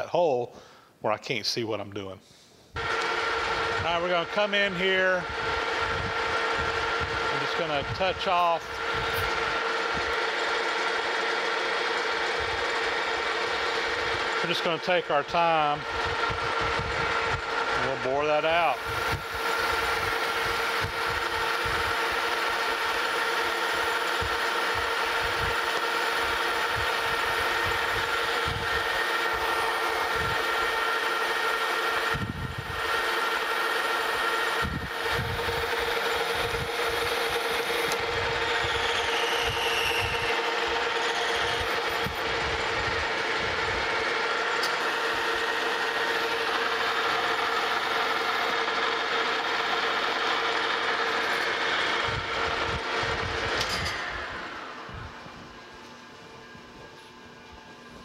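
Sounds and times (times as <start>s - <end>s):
metal lathe whining: 2.8s - 58.0s.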